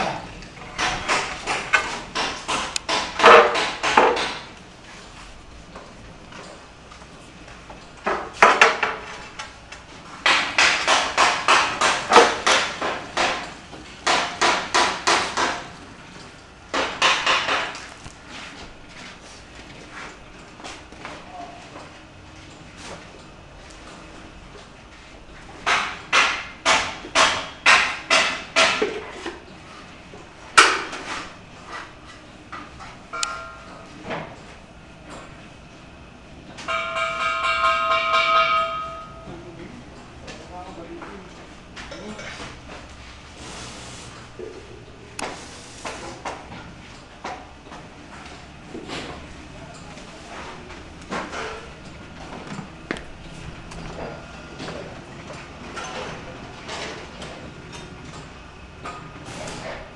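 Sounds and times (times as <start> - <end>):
metal struck and ringing: 33.1 - 33.9, 36.7 - 39.4.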